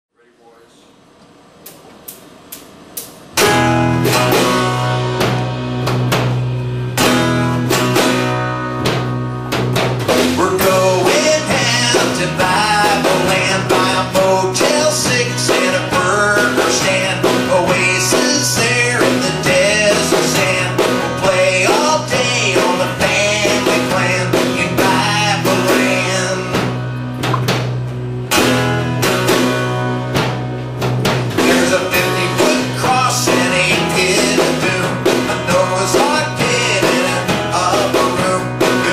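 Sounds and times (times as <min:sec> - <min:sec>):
electric guitar through amplifier: 0:01.2 - 0:38.9
strummed acoustic guitar: 0:03.4 - 0:38.9
sharp taps: 0:27.2 - 0:27.6.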